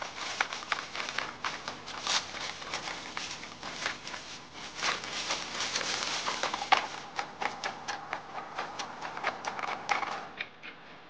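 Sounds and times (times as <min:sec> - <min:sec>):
robot feet crunching leaves: 0:00.0 - 0:07.7.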